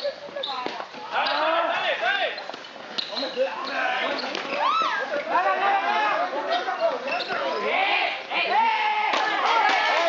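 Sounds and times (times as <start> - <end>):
young people shouting: 7.4 - 10.0.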